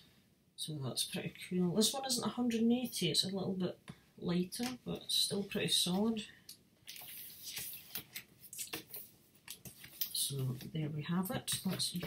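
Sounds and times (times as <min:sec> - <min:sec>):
paper sleeve rustling: 0:06.9 - 0:10.7.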